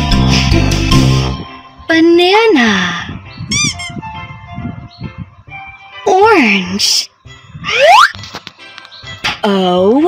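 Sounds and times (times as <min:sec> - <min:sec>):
background music: 0:00.0 - 0:10.0
cartoon squeak: 0:03.5 - 0:04.0, 0:07.7 - 0:08.2.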